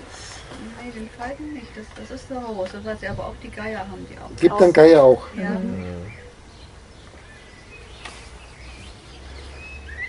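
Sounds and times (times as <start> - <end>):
faint birds chirping: 0.0 - 10.0.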